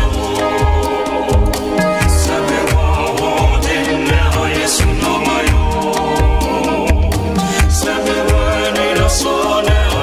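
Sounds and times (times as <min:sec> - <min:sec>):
bass drum thumps: 0:00.0 - 0:08.5
gospel music: 0:00.0 - 0:10.0.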